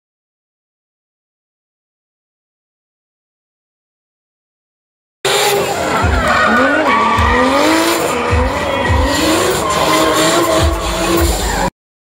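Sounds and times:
car engine revving: 5.3s - 11.7s
tyre screech: 5.3s - 11.7s.

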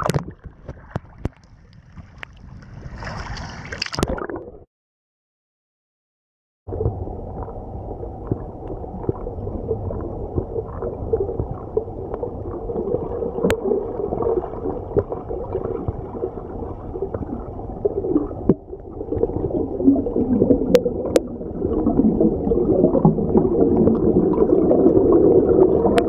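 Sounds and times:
muffled underwater water noise: 0.0s - 4.6s, 6.7s - 26.0s.

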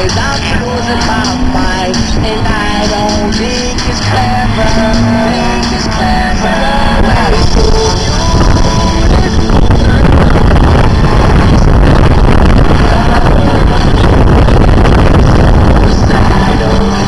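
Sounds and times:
pop music over loudspeakers: 0.0s - 17.0s
race car engines at speed: 0.0s - 17.0s.

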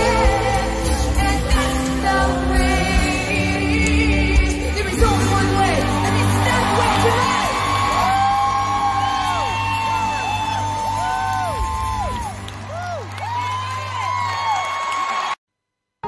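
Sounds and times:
audience whooping and cheering: 5.2s - 15.4s.

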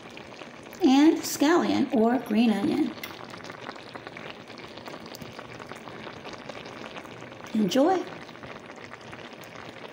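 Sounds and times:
noodles bubbling with small pops: 0.0s - 9.9s.

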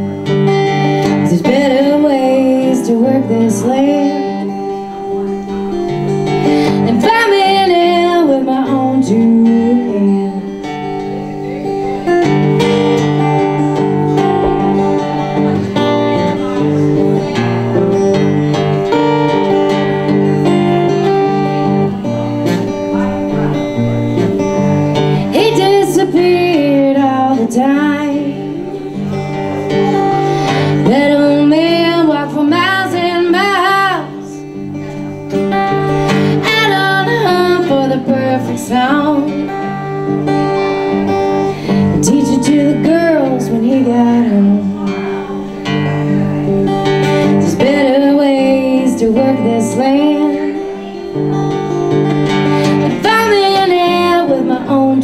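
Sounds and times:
woman singing: 0.0s - 11.4s, 24.6s - 55.0s
acoustic guitar chords: 0.0s - 55.0s.

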